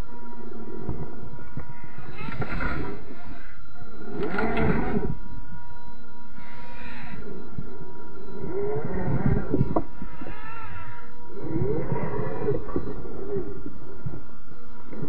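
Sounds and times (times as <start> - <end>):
slowed electric motor tones: 0.0 - 15.0.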